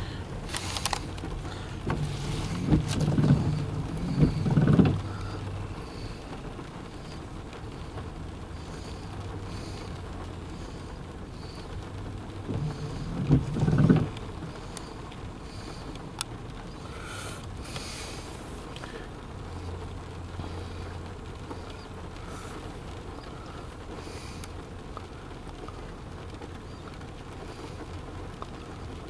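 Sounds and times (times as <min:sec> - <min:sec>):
rain pattering on a car: 0:00.0 - 0:29.0.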